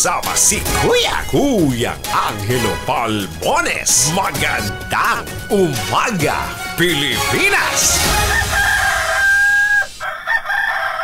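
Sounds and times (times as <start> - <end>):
rooster crowing: 8.1 - 11.0.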